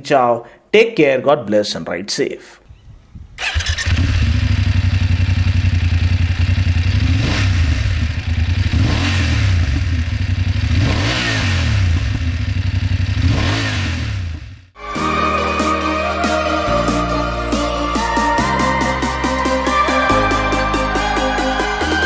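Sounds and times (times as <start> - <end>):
motorcycle throttle blips: 3.3 - 14.6
motorcycle engine idling: 3.5 - 10.8, 11.6 - 13.3.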